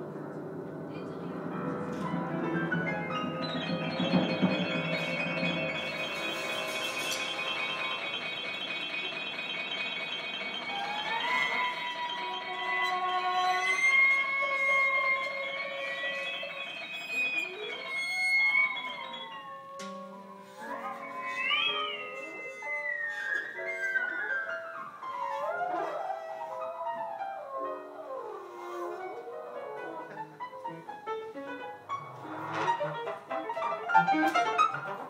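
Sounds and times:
small jazz ensemble playing: 24.8s - 35.0s.

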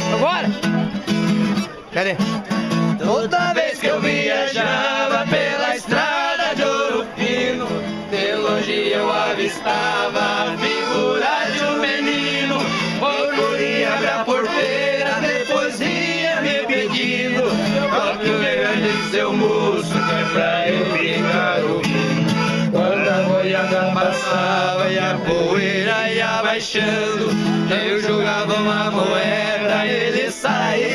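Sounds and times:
accordion: 0.0s - 30.9s
guitar: 0.0s - 30.9s
viola caipira: 0.0s - 30.9s
man singing: 22.7s - 30.9s.

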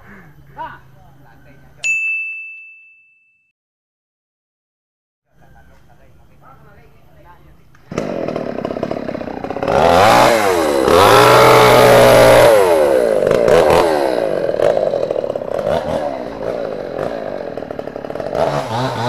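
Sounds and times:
chainsaw idling and revving: 7.8s - 19.0s.

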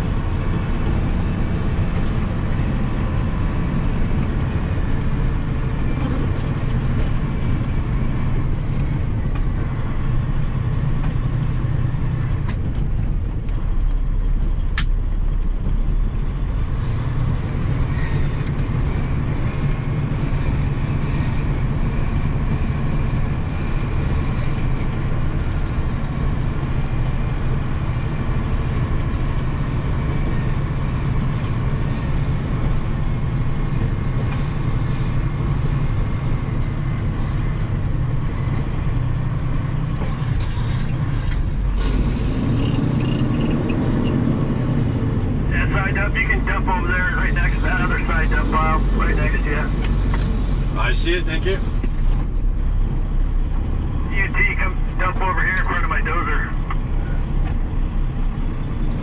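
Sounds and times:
diesel truck engine running: 0.0s - 59.0s
short sharp click: 14.8s - 15.0s.

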